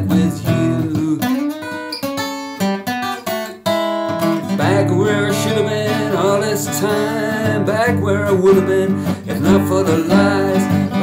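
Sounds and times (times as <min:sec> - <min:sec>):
person singing: 0:00.0 - 0:01.7, 0:04.4 - 0:11.0
acoustic guitar strumming: 0:00.0 - 0:11.0.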